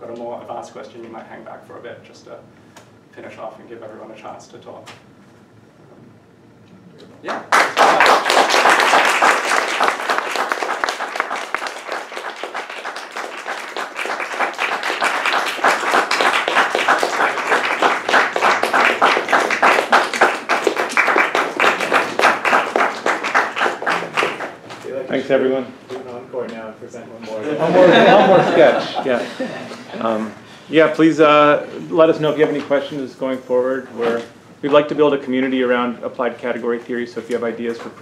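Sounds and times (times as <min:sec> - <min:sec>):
audience applauding: 0:07.4 - 0:24.8.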